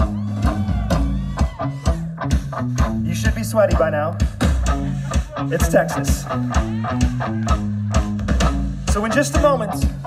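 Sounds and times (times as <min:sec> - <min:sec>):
bass guitar: 0:00.0 - 0:10.0
drum beat: 0:00.0 - 0:10.0
electric guitar: 0:00.0 - 0:10.0.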